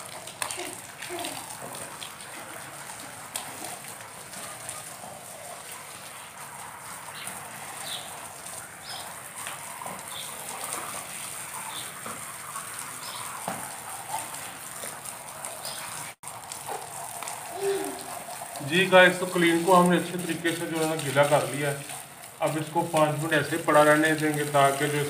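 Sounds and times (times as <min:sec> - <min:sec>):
hose water spraying onto rug: 0:00.0 - 0:25.0.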